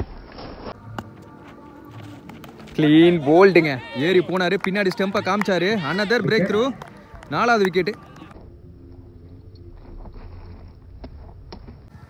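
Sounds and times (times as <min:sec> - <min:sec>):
low rumble: 0:08.3 - 0:12.0.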